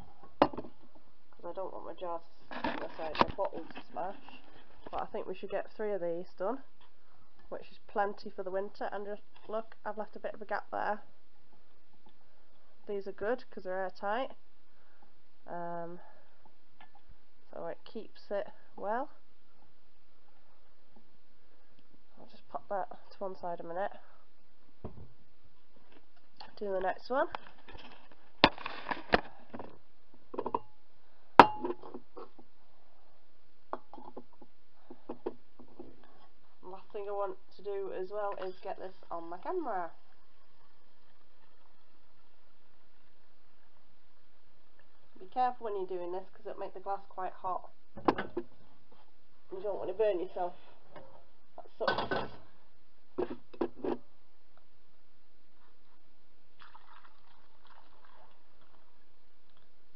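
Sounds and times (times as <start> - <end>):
liquid trickling: 56.5 - 59.1.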